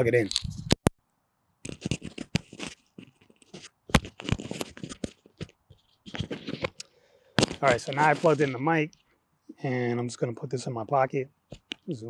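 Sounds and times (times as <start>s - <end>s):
microphone scratching and rubbing: 0.0s - 0.9s, 1.6s - 6.8s, 7.4s - 8.9s.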